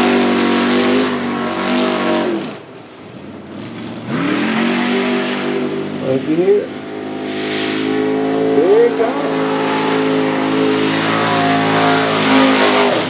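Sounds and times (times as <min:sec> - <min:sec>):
truck engine at high revs: 0:00.0 - 0:13.0.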